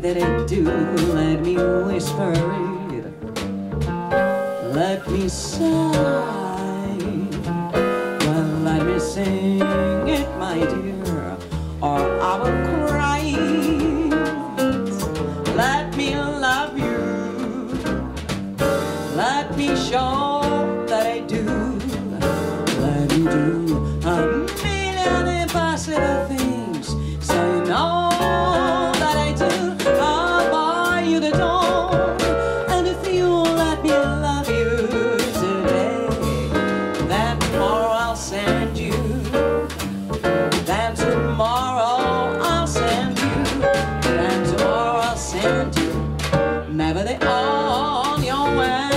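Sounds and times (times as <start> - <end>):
double bass: 0.0 - 48.9
electric piano: 0.0 - 48.9
drums and cymbals: 3.4 - 46.6
person singing: 19.2 - 39.5, 40.7 - 46.1, 46.7 - 48.9.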